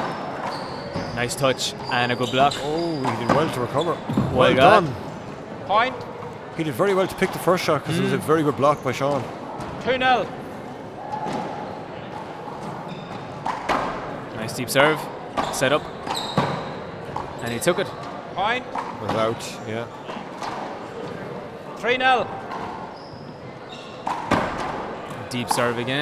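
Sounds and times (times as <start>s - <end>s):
faint shoe squeak: 0.0s - 4.8s, 12.8s - 13.4s, 15.4s - 16.8s, 17.4s - 18.0s, 22.6s - 24.2s.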